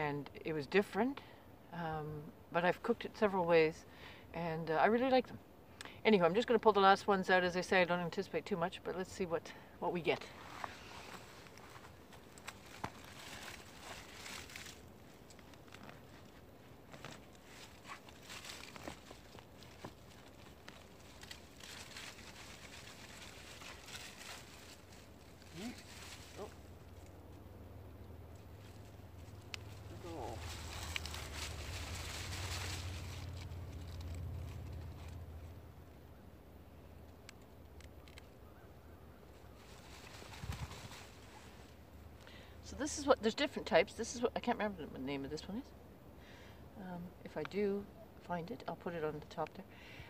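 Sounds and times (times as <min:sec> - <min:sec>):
hands rustling in soil: 0:10.1 - 0:35.6, 0:39.2 - 0:43.2.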